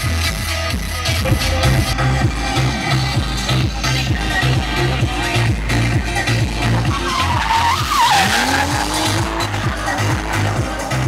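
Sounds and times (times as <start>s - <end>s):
electronic dance music: 0.0s - 11.0s
car engine revving: 1.0s - 11.0s
tyres squealing: 6.6s - 9.9s.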